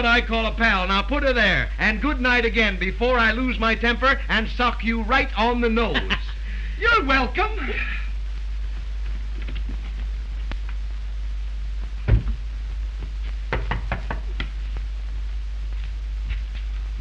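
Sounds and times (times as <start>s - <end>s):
film soundtrack hum and hiss: 0.0s - 17.0s
door shutting with thud: 12.0s - 12.4s
knocking on wooden door: 13.5s - 14.5s.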